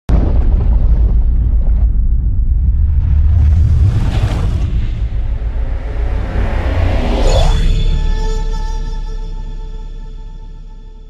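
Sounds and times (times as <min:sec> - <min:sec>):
deep steady rumble: 0:00.1 - 0:11.0
whoosh: 0:02.1 - 0:10.6.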